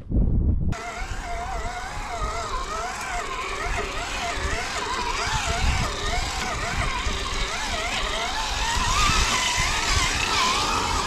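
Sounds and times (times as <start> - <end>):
rc car motor whining: 0.8 - 11.0.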